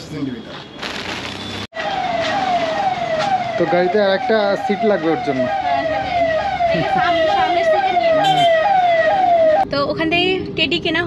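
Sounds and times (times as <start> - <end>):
electronic siren falling glide: 1.8 - 9.7.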